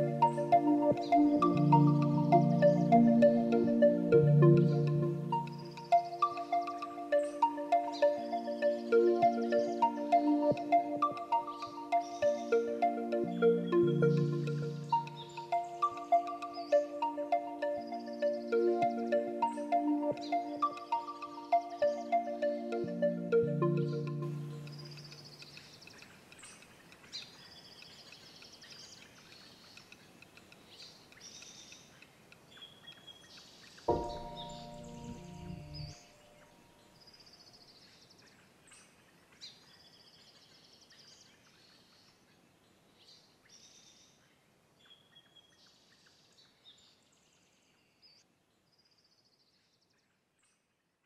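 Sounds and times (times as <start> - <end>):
songbirds singing: 0.0 - 50.6
faint outdoor background: 0.0 - 51.0.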